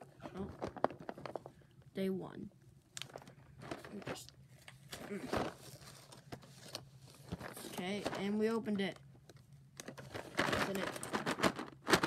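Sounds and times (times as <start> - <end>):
cardboard clicks and rustles: 0.3 - 1.5, 9.8 - 12.0.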